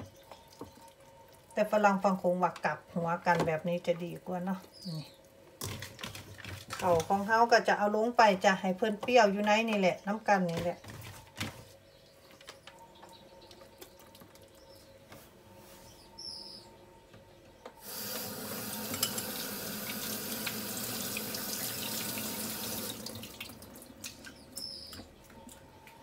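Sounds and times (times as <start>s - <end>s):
tap running into sink: 17.9s - 23.1s.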